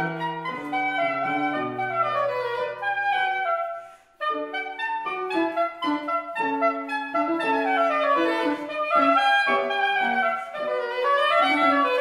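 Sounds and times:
soprano saxophone melody: 0.0 - 12.0.

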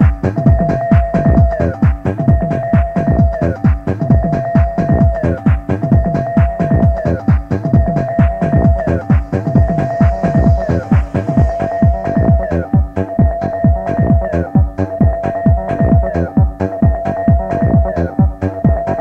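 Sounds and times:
electronic dance music: 0.0 - 19.0
steady kick drum: 0.0 - 19.0
synth note sliding down: 4.1 - 19.0.

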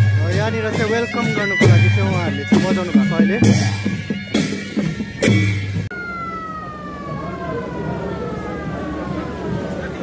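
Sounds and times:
band music with bagpipe drone: 0.0 - 7.3
road noise: 0.0 - 10.0
siren falling in pitch: 5.9 - 10.0.

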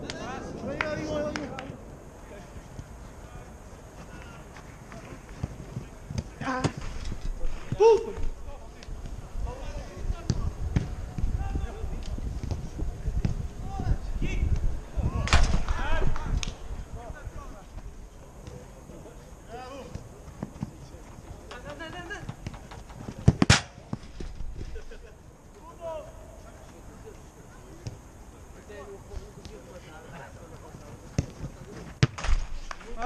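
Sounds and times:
footballers calling out: 0.0 - 32.1.

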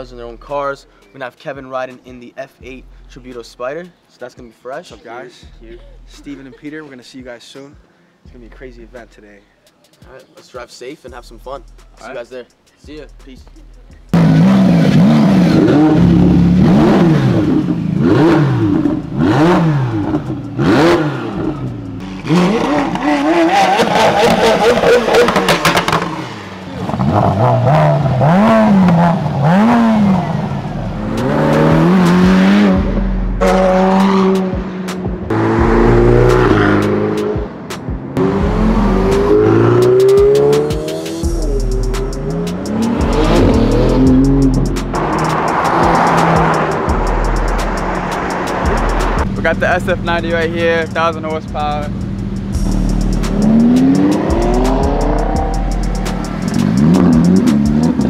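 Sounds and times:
sports car engines revving: 13.5 - 58.0
cars accelerating at speed: 14.1 - 58.0.

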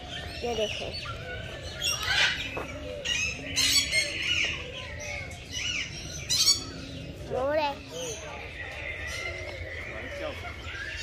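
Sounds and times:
birds squawking: 0.0 - 11.0.

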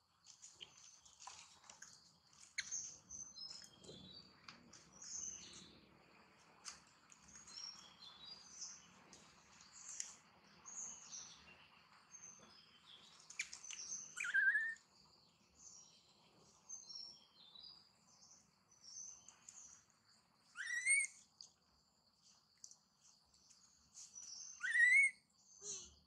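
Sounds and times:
birds chirping: 2.4 - 6.0, 7.2 - 21.2, 23.4 - 26.0
gliding bird calls: 13.3 - 14.8, 20.5 - 21.2, 24.5 - 25.2.

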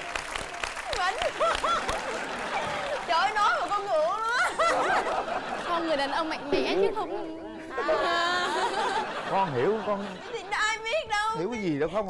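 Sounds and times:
woman speaking: 5.7 - 8.6
man and woman laughing: 7.7 - 10.4.

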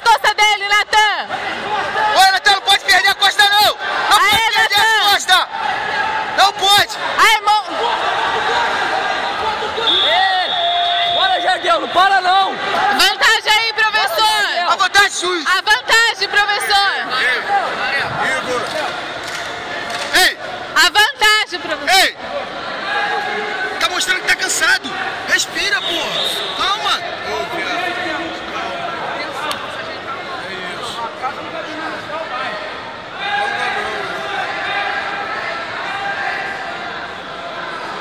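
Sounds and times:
shouting voices and crowd chatter: 0.0 - 38.0.

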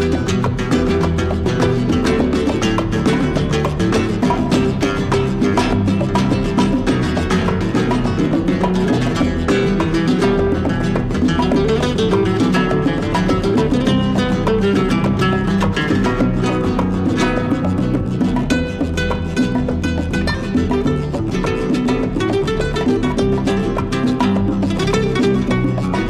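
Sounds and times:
flamenco guitar playing: 0.0 - 26.0.

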